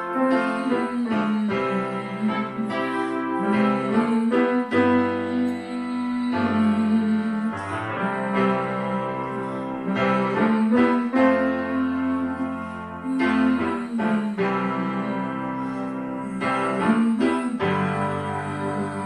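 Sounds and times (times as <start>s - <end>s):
piano chords: 0.0s - 19.0s.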